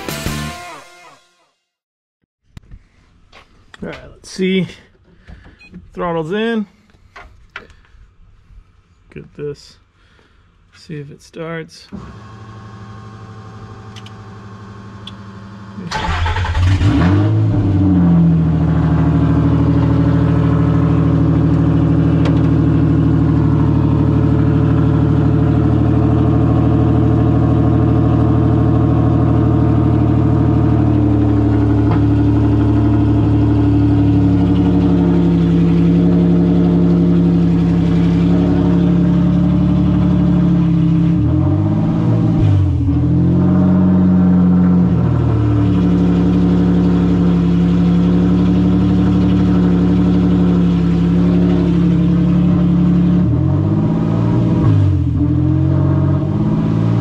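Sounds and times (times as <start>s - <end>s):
engine cranking and starting: 15.8s - 17.2s
engine idling: 18.4s - 40.9s.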